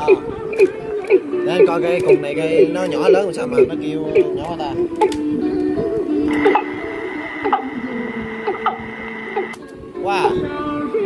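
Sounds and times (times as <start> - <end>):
steady high tone: 0.0 - 10.4
music with singing from cassette: 0.0 - 11.0.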